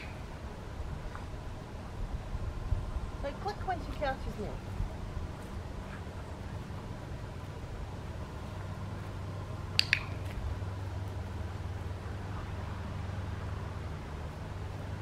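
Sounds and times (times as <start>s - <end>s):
clicker double click: 9.8s - 10.3s.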